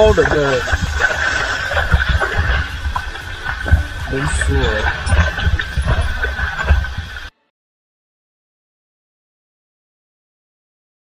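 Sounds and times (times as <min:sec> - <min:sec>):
waterfall hiss: 0:00.0 - 0:07.3
wind buffeting microphone: 0:00.0 - 0:07.3.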